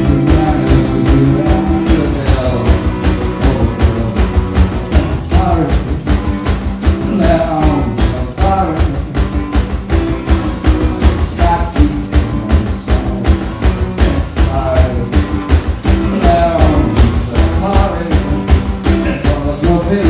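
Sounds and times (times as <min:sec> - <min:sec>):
acoustic guitar: 0:00.0 - 0:20.0
fast drum beat: 0:00.0 - 0:20.0
person singing: 0:00.0 - 0:20.0.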